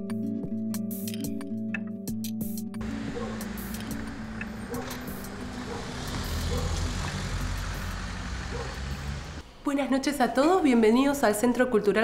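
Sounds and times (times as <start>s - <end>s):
vehicle engine rumbling: 2.8s - 9.5s
street traffic: 2.8s - 9.6s.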